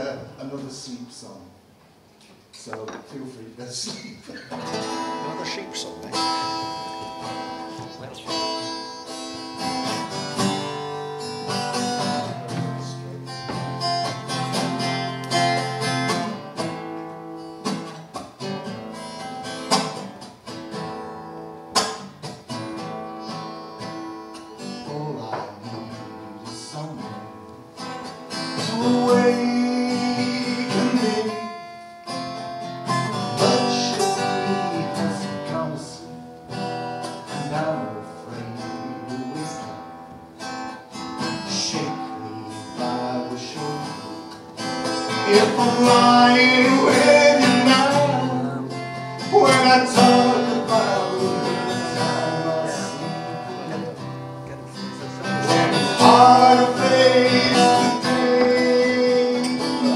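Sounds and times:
solo acoustic guitar: 3.8 - 59.9
man singing: 12.0 - 13.6, 24.6 - 27.4, 28.6 - 31.7, 32.9 - 36.2, 37.3 - 39.8, 41.2 - 59.9.

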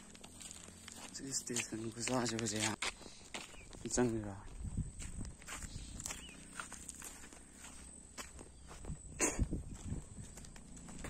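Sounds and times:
footsteps on grass: 0.0 - 11.0.

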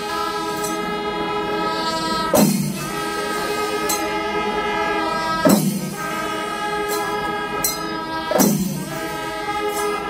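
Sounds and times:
horns holding sustained chord: 0.0 - 10.0.

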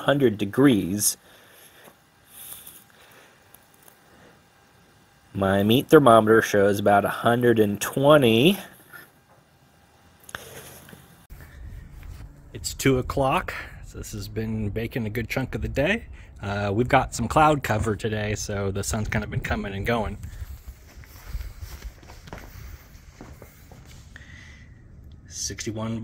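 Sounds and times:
low steady rumble: 9.8 - 26.0
footsteps on concrete: 20.3 - 24.2.

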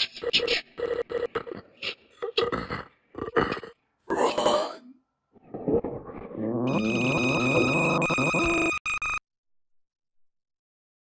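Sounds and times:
distorted voice-like cry: 5.4 - 8.7.

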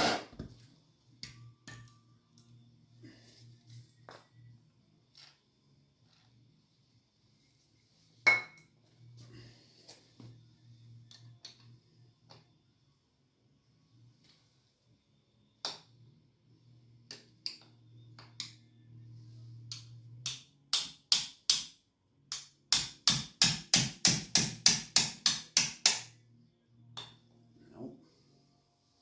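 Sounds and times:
faint low hum: 0.3 - 20.2, 26.2 - 29.0.

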